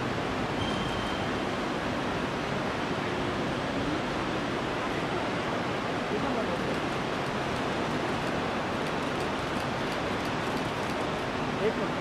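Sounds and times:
outdoor background rushing noise: 0.0s - 12.0s.

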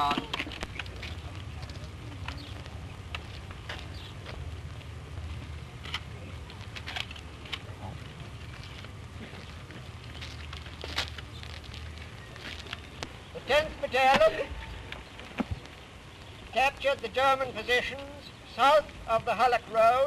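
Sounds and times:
film soundtrack clicks and crackles: 0.0s - 13.2s.

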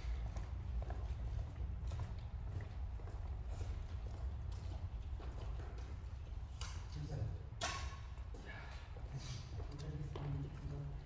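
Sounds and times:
footsteps on sports hall floor: 0.0s - 6.6s.

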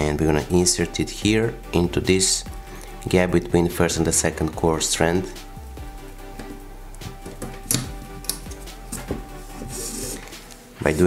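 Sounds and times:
background music with ticking beat: 0.0s - 11.0s.

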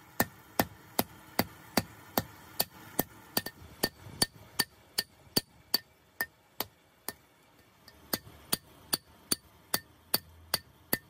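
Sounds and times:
hammer striking steel on anvil: 1.8s - 7.2s, 7.8s - 11.0s.

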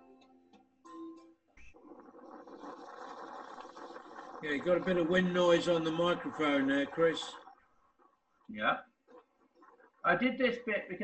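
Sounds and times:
background music: 0.0s - 1.5s.

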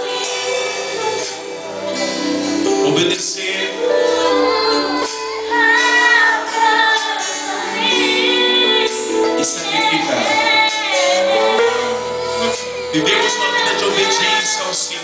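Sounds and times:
woman singing: 0.0s - 3.0s, 3.6s - 15.0s.

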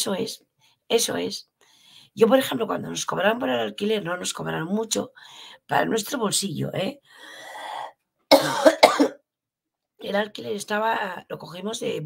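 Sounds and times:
woman coughing: 8.3s - 9.2s.

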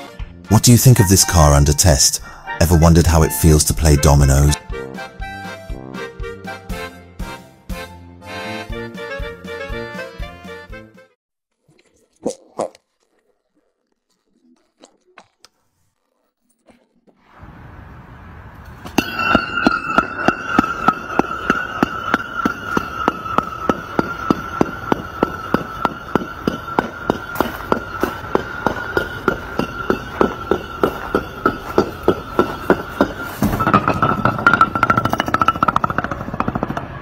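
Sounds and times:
concrete blocks toppling and clacking: 19.0s - 37.0s.

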